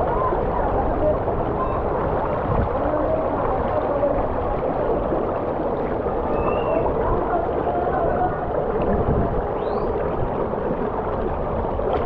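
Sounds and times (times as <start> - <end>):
water rushing down a slide: 0.0 - 12.0.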